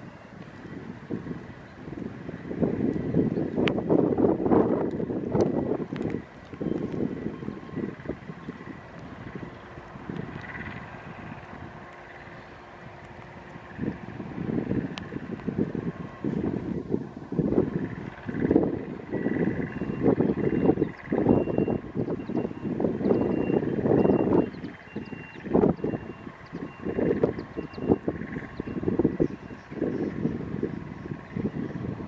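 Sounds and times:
wind buffeting microphone: 0:00.0 - 0:32.0
faint high warning beep: 0:06.5 - 0:08.6, 0:19.1 - 0:29.8.

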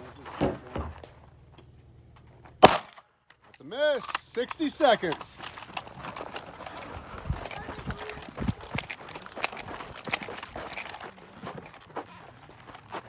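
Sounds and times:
footsteps on dirt and gravel: 0:03.4 - 0:13.0.

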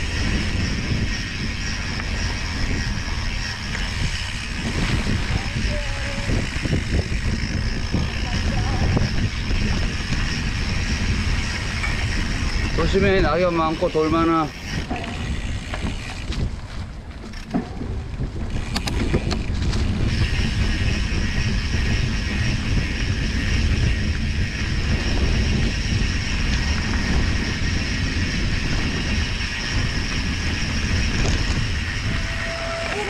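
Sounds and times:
bike tyres over rough ground: 0:00.0 - 0:33.0
sharp rattles: 0:00.0 - 0:33.0
wind on microphone: 0:00.0 - 0:33.0.

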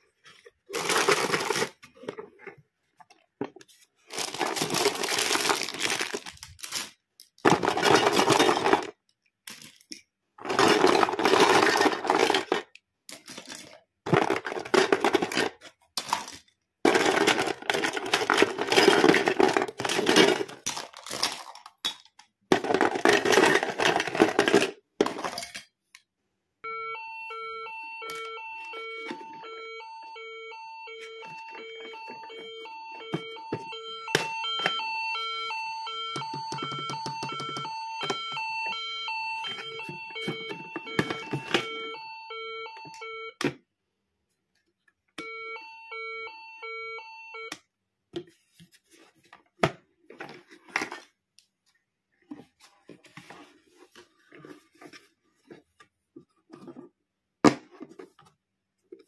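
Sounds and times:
plastic toy pieces clattering: 0:00.6 - 0:02.5, 0:04.0 - 0:25.9
toy electronic beeping: 0:26.6 - 0:43.4, 0:45.2 - 0:47.6.

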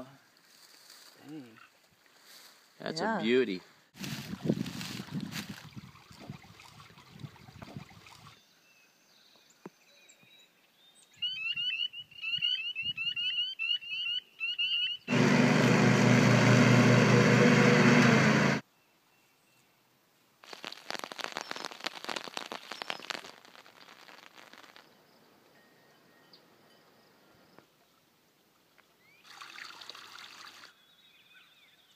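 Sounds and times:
water splashing in a stream: 0:05.0 - 0:08.4, 0:29.2 - 0:30.7
riding lawn mower engine running: 0:15.1 - 0:18.6.

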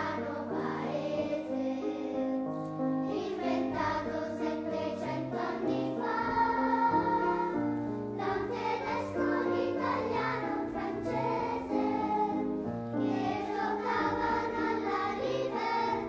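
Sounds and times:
children's choir singing: 0:00.0 - 0:16.0
grand piano: 0:00.0 - 0:16.0.

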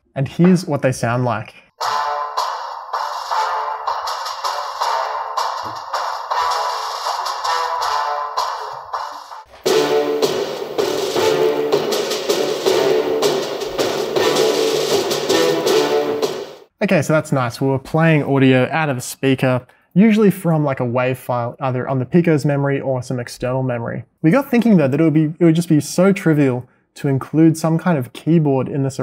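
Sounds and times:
music through a small speaker: 0:01.8 - 0:16.3.

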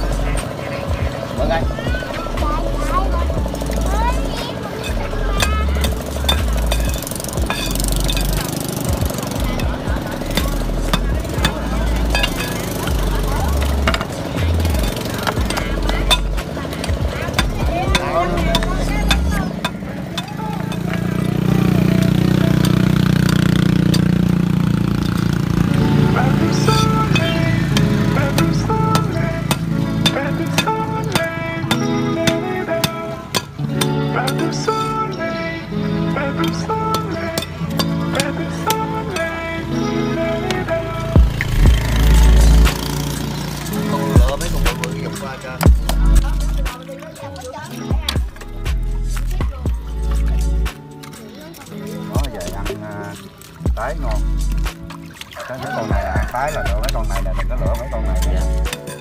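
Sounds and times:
background music: 0:00.0 - 0:59.0.

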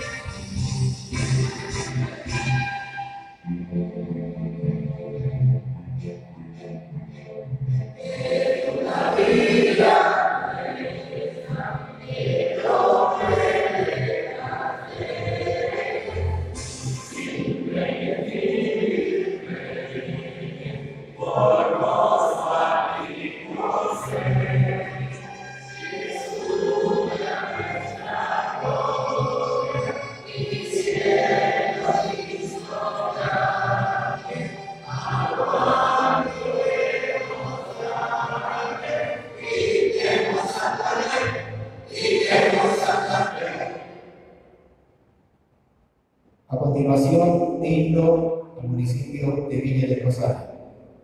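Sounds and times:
choir singing over loudspeakers: 0:00.0 - 0:05.4, 0:06.0 - 0:44.5.

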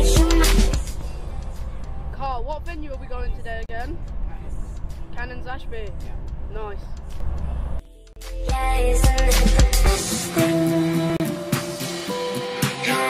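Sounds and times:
car cabin road rumble: 0:00.0 - 0:07.9
music: 0:00.0 - 0:13.0.

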